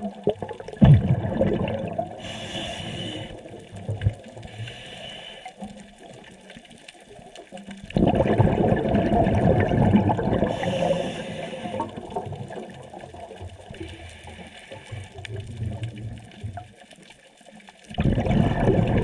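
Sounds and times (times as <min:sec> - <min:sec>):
exhaled bubbles rushing: 0:00.0 - 0:02.4, 0:07.8 - 0:13.9, 0:17.9 - 0:19.0
regulator inhale hiss: 0:02.1 - 0:03.6, 0:04.4 - 0:05.8, 0:10.5 - 0:12.0, 0:13.8 - 0:15.2.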